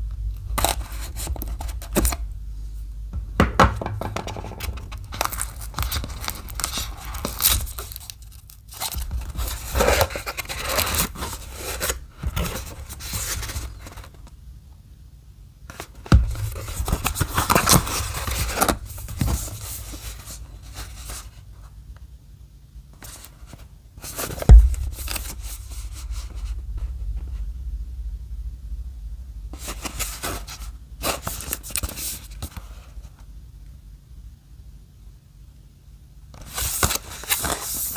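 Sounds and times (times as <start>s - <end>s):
low rumble: 0.0s - 8.4s, 16.2s - 21.6s, 24.5s - 31.7s
cardboard rustling: 3.8s - 14.2s, 15.7s - 21.4s, 23.0s - 26.6s
cardboard box being opened: 4.4s - 14.2s, 16.3s - 21.3s
paperboard scraping: 8.7s - 14.2s, 16.2s - 21.4s.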